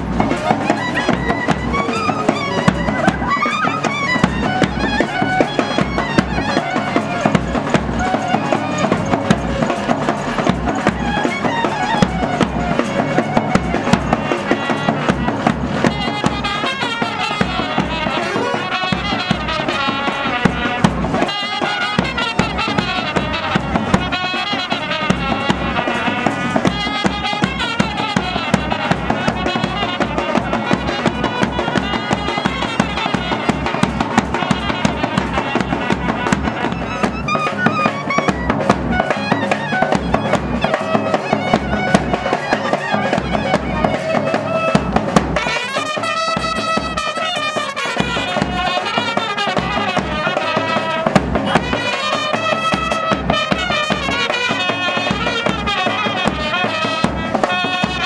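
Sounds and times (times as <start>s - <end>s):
steady drum beat: 0.0s - 58.0s
trumpets playing lively tune: 0.0s - 58.0s.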